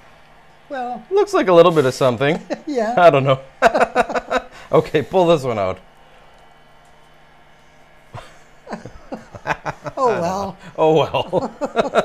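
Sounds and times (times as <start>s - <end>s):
faint steady hum: 2.3s - 12.0s.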